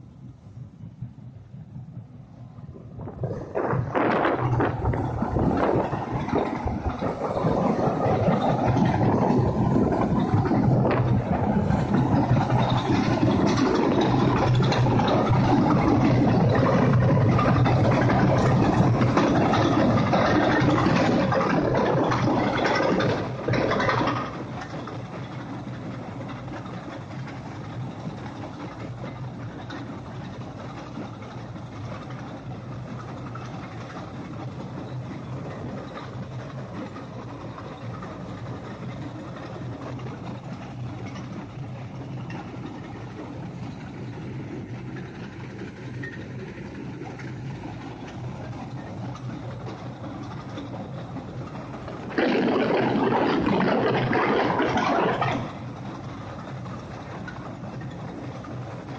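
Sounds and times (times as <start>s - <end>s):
heavy diesel engine hum: 0.0s - 58.9s.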